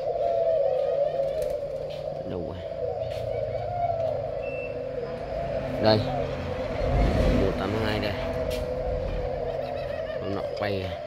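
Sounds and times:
doves cooing: 0.0 - 11.0.

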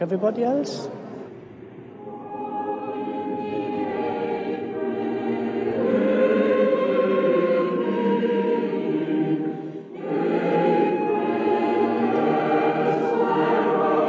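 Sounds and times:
choir singing held chords: 0.9 - 14.0.

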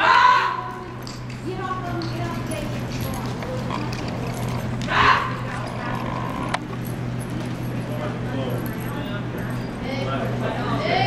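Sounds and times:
steady low hum: 0.0 - 11.0
indistinct voices: 0.6 - 8.0.

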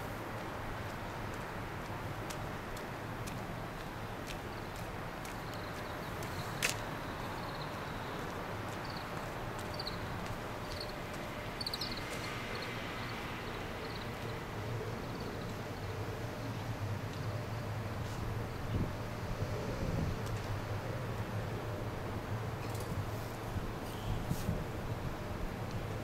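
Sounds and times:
outdoor background hum: 0.0 - 26.0.

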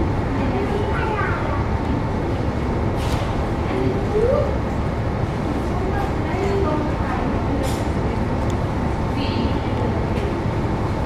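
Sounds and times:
low rumbling background noise: 0.0 - 11.0.

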